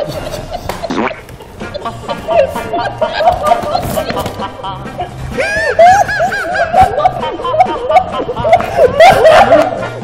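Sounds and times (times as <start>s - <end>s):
people laughing uncontrollably: 0.0s - 10.0s.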